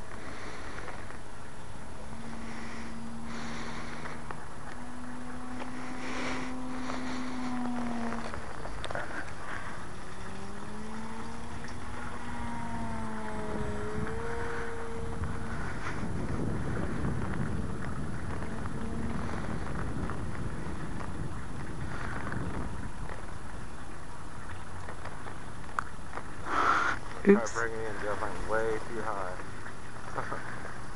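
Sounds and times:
model plane propeller hum: 0.0 - 30.9
wind noise on microphone: 0.0 - 30.9.

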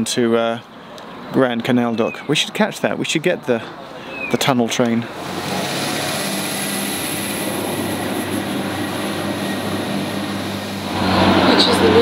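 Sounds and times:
diesel train engine drone: 4.7 - 12.0.

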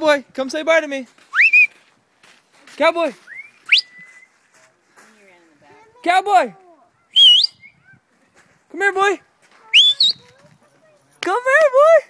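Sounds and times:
person whistling: 1.3 - 1.8, 3.3 - 4.4, 7.1 - 7.8, 9.8 - 10.2.

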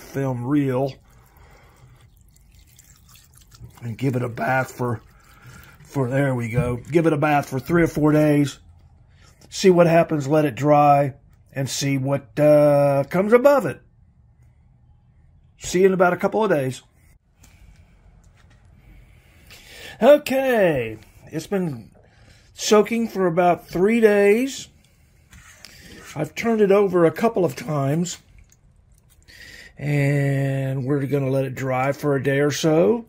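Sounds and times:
liquid trickling and splashing: 0.0 - 7.7, 28.2 - 29.4
rubbing and handling noise: 24.9 - 26.4.

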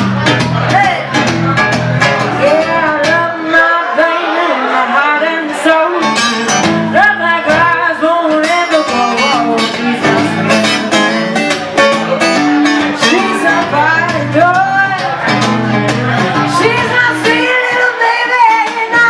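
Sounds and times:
bass line: 0.0 - 3.5, 6.0 - 19.0
blues guitar: 0.0 - 19.0
woman singing into a microphone: 2.3 - 10.8, 13.0 - 19.0.

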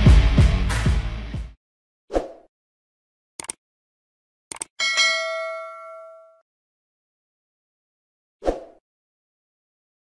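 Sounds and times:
double mouse click: 3.4 - 3.6, 4.5 - 4.7
notification bell ding: 4.8 - 6.4.

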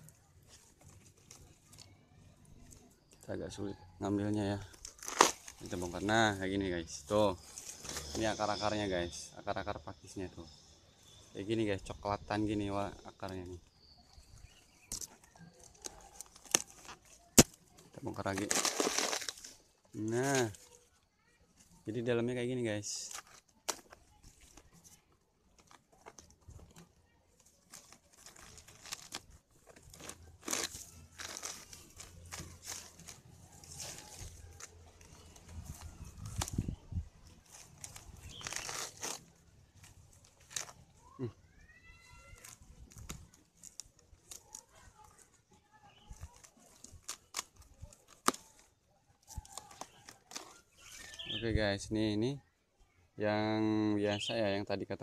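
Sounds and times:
leaves rustling: 0.0 - 9.3, 10.0 - 52.2
roots being torn out by hand: 4.0 - 9.2, 10.4 - 20.8, 21.6 - 51.5.

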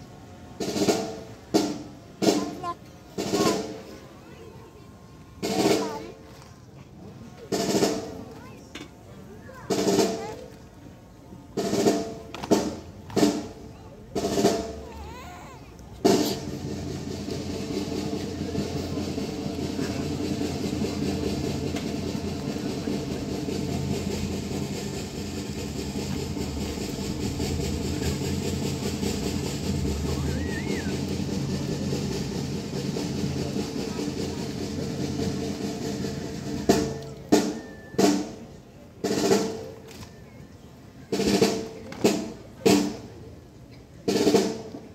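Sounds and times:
sharp snare drum strikes: 0.6 - 3.8, 7.5 - 8.9, 9.7 - 10.6, 11.6 - 15.0, 16.0 - 39.8, 41.1 - 43.2, 44.1 - 44.9
snare drum roll: 0.6 - 4.0, 5.4 - 6.5, 7.4 - 8.4, 9.6 - 10.7, 11.5 - 40.0, 41.1 - 43.2, 44.0 - 44.9.

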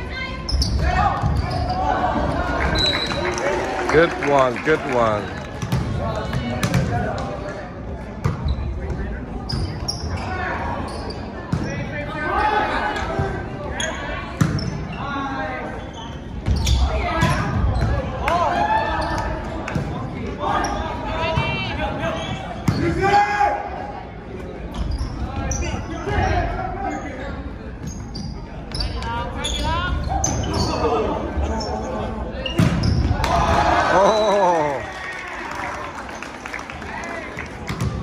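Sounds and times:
volleyball bouncing on gym floor: 5.6 - 7.3, 37.6 - 38.0
players and spectators shouting: 33.1 - 35.9.

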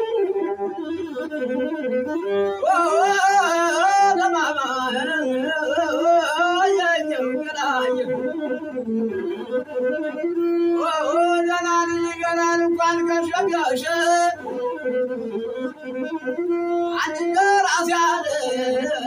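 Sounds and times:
bowed single-string lute: 0.0 - 19.0
man singing: 2.4 - 8.8, 10.4 - 15.3, 16.8 - 19.0.

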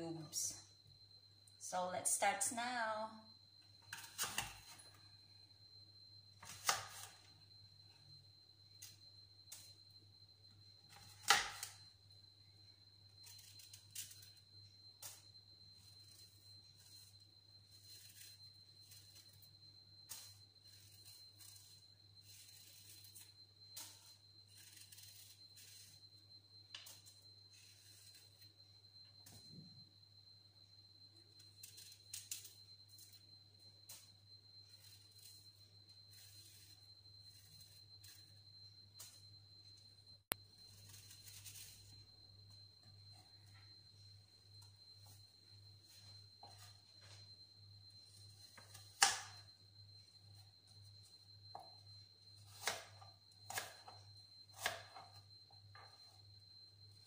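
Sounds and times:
faint high whine: 0.0 - 57.0.

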